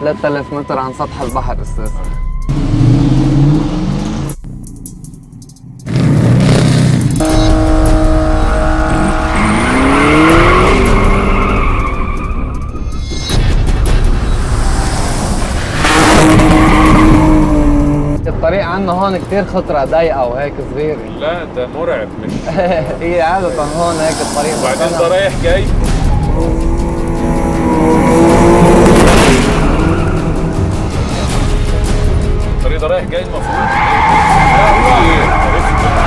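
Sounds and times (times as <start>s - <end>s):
car engine revving high: 5.9s - 11.8s, 15.2s - 18.2s, 26.3s - 31.0s
tyres screeching on asphalt: 8.6s - 13.3s, 14.4s - 17.9s, 23.4s - 25.3s, 28.9s - 30.9s, 33.3s - 36.0s.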